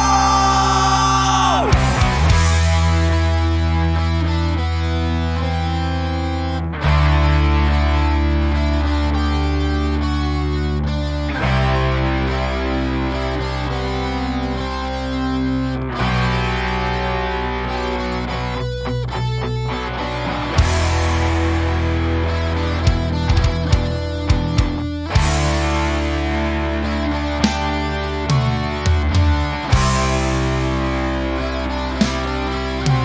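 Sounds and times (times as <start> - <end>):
bass guitar: 0.0 - 33.0
distorted electric guitar chords: 0.0 - 33.0.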